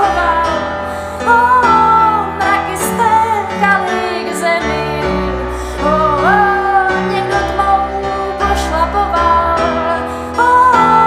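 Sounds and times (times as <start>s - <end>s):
keyboard: 0.0s - 11.0s
woman singing a slow song: 0.0s - 11.0s.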